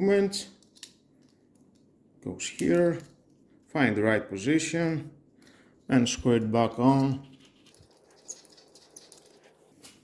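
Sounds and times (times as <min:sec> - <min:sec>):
fingers rustling plastic bracket: 0:06.8 - 0:10.0.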